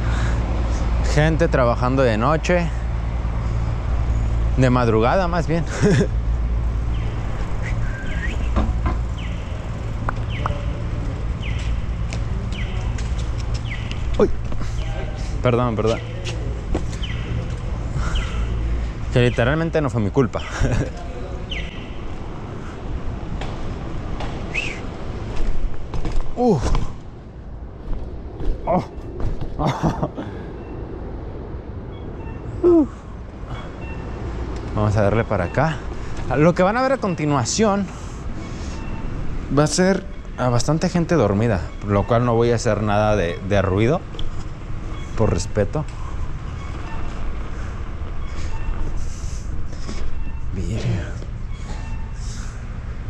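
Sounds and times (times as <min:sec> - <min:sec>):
bike tyres rolling on pavement: 0:02.6 - 0:31.8
rider voice sounds: 0:50.5 - 0:51.3.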